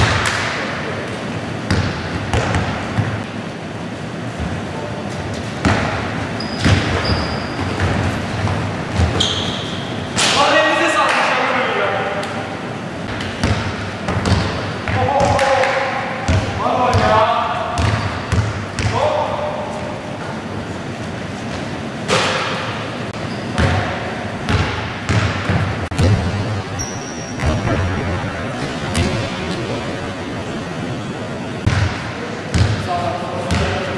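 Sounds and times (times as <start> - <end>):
sneaker squeaks: 6.4 - 10.0, 23.2 - 23.8, 25.9 - 30.4.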